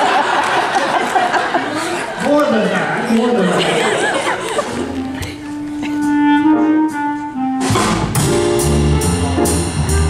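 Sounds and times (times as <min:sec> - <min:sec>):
woodwind long notes: 0:04.7 - 0:08.3
upright bass: 0:07.6 - 0:10.0.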